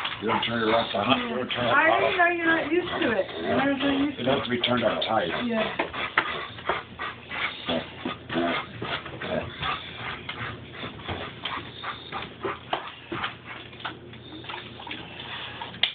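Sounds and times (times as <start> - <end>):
dog grunting and snuffling: 0.0 - 15.8.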